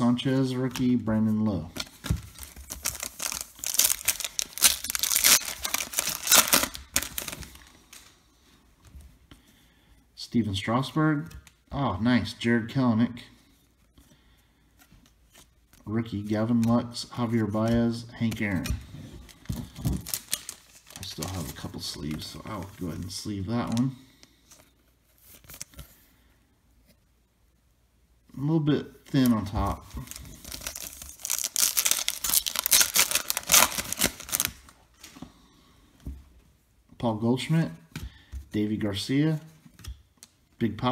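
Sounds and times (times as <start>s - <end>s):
man talking: 0.0s - 1.8s, 10.2s - 13.4s, 15.8s - 18.9s, 21.0s - 24.1s, 28.3s - 30.2s, 37.0s - 37.9s, 38.5s - 39.6s, 40.6s - 40.9s
cards clicking and rustling: 1.7s - 8.1s
plastic wrapper crinkling and tearing: 1.7s - 8.1s, 19.4s - 21.7s, 29.1s - 35.1s.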